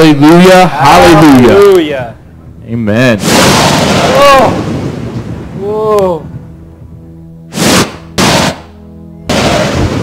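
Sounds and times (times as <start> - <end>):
thunder cracks over loudspeakers: 3.2 - 5.6, 9.3 - 10.0.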